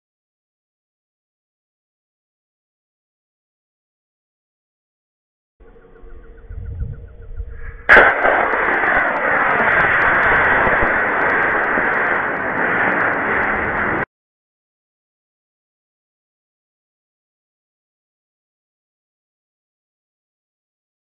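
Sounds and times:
rocket motor roaring: 0:07.8 - 0:14.1.

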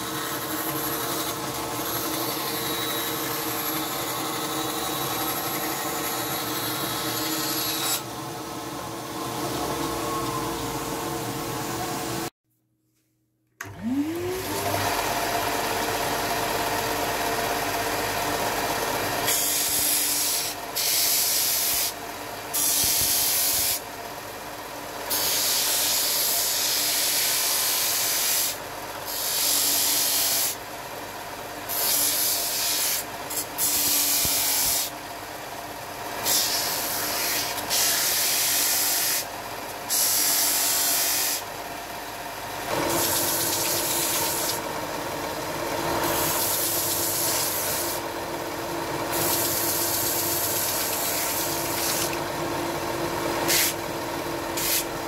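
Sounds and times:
band saw cutting wood: 0:00.0 - 0:12.3, 0:13.7 - 0:23.8, 0:25.1 - 0:30.6, 0:31.6 - 0:35.0, 0:36.1 - 0:41.5, 0:42.6 - 0:44.8, 0:45.4 - 0:48.1, 0:48.9 - 0:55.0
sander whine: 0:00.0 - 0:12.3, 0:13.6 - 0:19.7.

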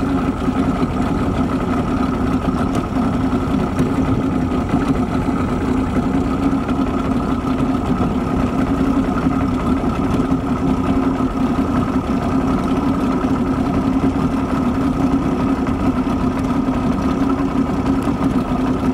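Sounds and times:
boat motor running: 0:00.0 - 0:18.9.

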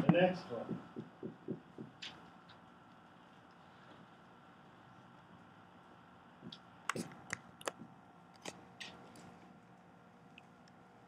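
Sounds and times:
marker squeaking on whiteboard: 0:00.0 - 0:02.7, 0:06.9 - 0:07.9.

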